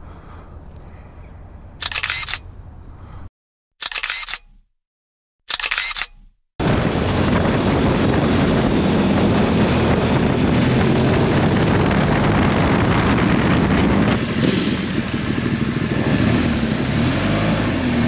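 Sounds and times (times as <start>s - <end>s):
wind rush on microphone: 6.6s - 18.0s
motorcycle engine: 6.7s - 18.0s.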